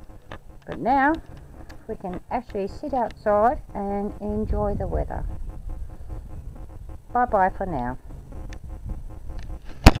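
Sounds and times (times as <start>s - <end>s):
faint ticks: 0.0s - 7.2s, 8.4s - 8.7s, 9.3s - 9.9s.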